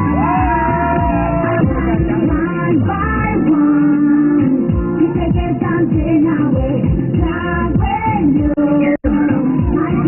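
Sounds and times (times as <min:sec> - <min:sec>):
music with a steady beat: 0:00.0 - 0:10.0
woman singing into a microphone: 0:01.5 - 0:10.0.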